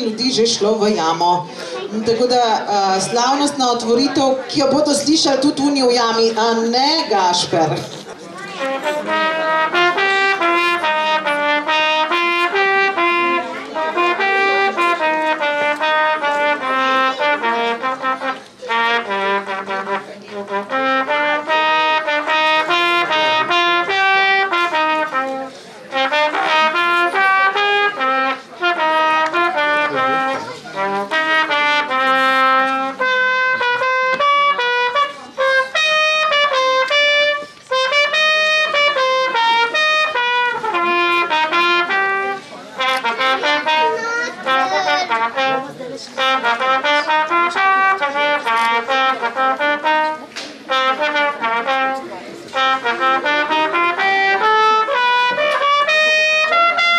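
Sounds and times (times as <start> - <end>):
solo trumpet fanfare: 8.5 - 56.9.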